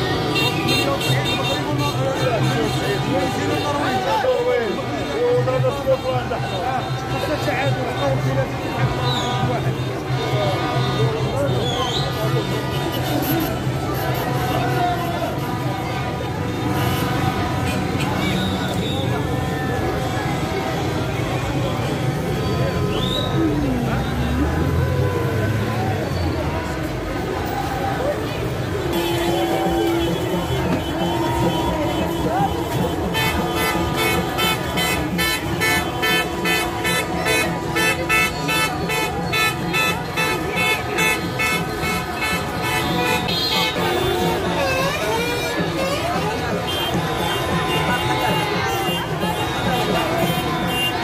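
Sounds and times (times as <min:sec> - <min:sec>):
vehicle horns tooting: 0:00.0 - 0:26.8, 0:28.4 - 0:51.0
celebrating crowd voices: 0:00.0 - 0:51.0.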